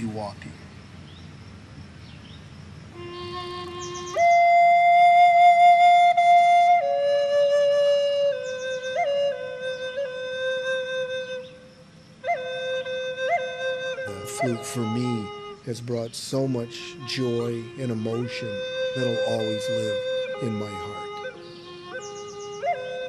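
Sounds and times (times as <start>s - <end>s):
wooden flute melody: 3.0s - 23.0s.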